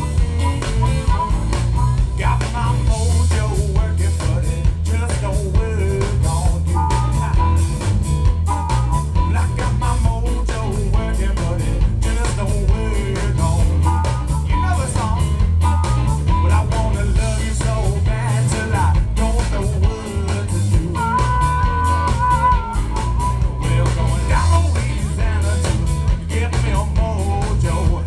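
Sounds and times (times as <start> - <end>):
man singing: 0.0 - 7.8, 8.5 - 28.0
drums with steady beat: 0.0 - 28.0
electric guitar: 0.0 - 28.0.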